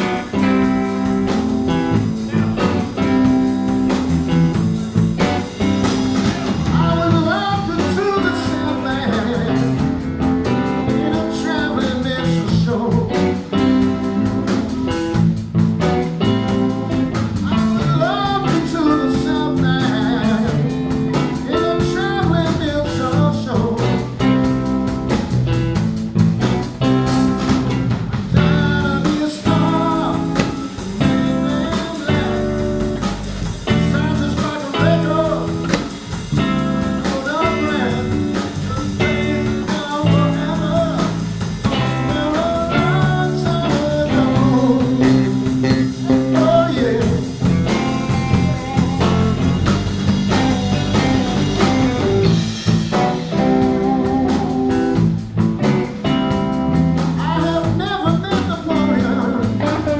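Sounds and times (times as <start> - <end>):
person singing lead vocal: 0.0 - 4.1, 4.9 - 15.0, 16.2 - 24.7, 28.3 - 55.1, 57.0 - 59.9
drum kit: 0.0 - 59.9
electric bass: 0.0 - 59.9
electric guitars: 0.0 - 59.9.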